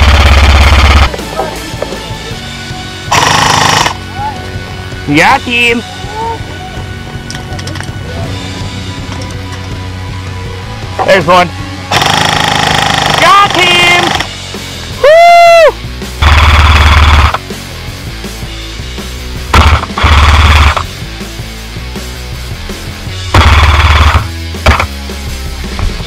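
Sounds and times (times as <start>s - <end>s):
airsoft gunfire rattle: 0.0s - 1.1s, 3.1s - 4.0s, 11.9s - 14.3s, 16.2s - 17.4s, 19.6s - 20.9s, 23.3s - 24.9s
dense buzzing bass sound: 0.0s - 1.1s, 16.0s - 25.8s
background music: 0.1s - 26.0s.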